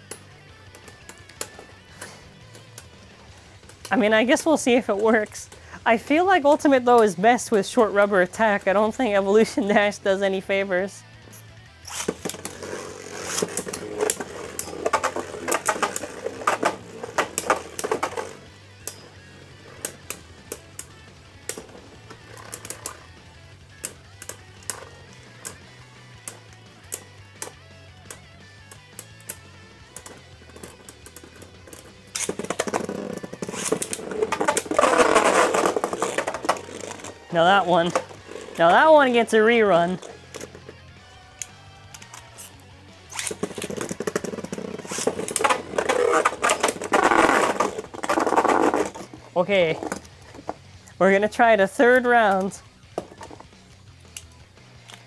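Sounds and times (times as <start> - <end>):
faint background music: 0.0 - 55.0.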